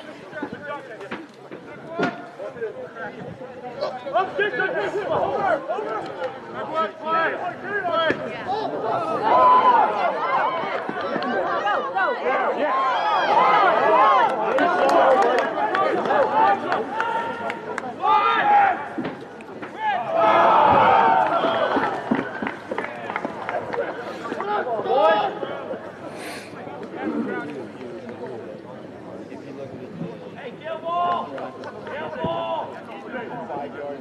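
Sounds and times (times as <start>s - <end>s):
crowd shouting: 3.8s - 23.5s.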